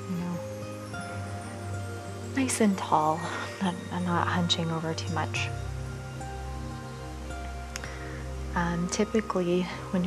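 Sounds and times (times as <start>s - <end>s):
low steady drone: 0.0s - 10.0s
soft slow background music: 0.0s - 10.0s.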